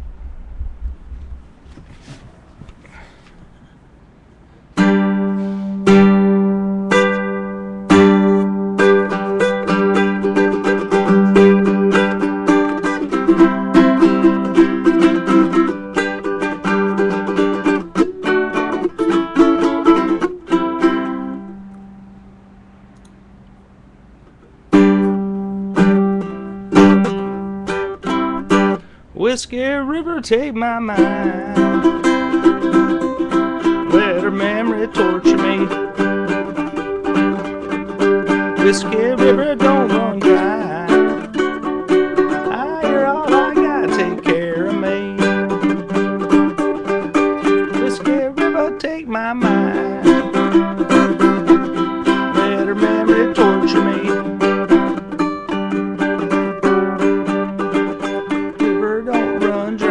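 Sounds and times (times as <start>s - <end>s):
ukulele playing: 4.7s - 23.1s, 24.5s - 29.0s, 30.6s - 59.9s.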